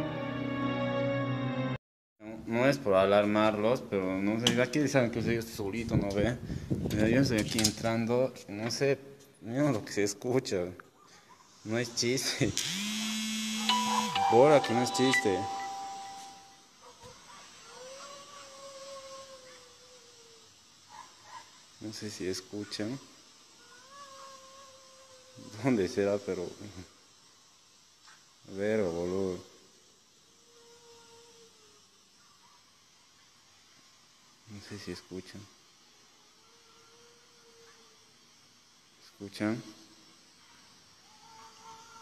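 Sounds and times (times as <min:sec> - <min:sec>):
faint drawn-out wailing tone: 0:13.4 - 0:16.7
faint wailing cry: 0:17.6 - 0:20.6, 0:23.6 - 0:25.7, 0:30.4 - 0:31.9, 0:36.2 - 0:38.1, 0:41.0 - 0:42.0.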